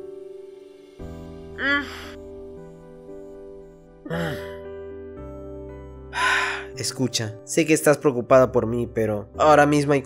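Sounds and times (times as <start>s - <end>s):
soft background music: 0.0s - 10.0s
person sighing or gasping: 1.2s - 2.4s, 4.0s - 4.7s, 6.1s - 6.8s.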